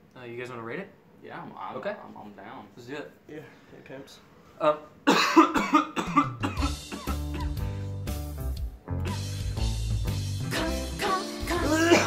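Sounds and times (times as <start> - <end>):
man coughing: 5.0 - 7.6, 11.8 - 12.0
music beat with deep bass: 6.5 - 12.0.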